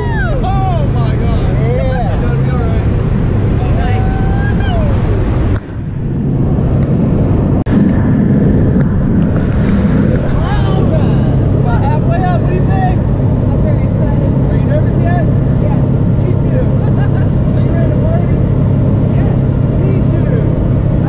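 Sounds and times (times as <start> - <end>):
propeller plane engine drone: 0.0 - 21.0.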